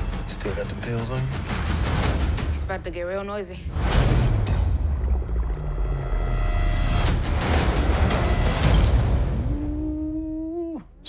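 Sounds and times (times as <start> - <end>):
action trailer score: 0.0 - 10.4.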